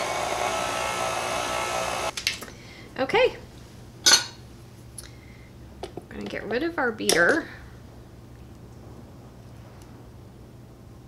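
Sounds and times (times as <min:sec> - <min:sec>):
stand mixer motor running: 0:00.0 - 0:02.1.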